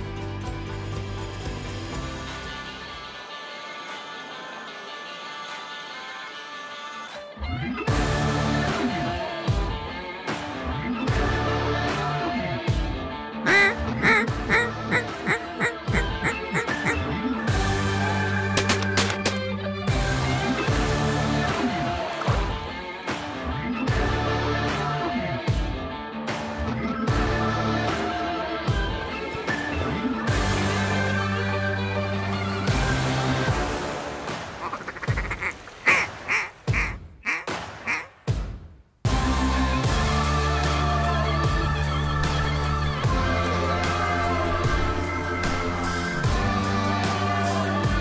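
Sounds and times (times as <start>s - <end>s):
background music: 0.0s - 48.0s
duck call quacks: 13.4s - 17.0s, 34.6s - 38.2s.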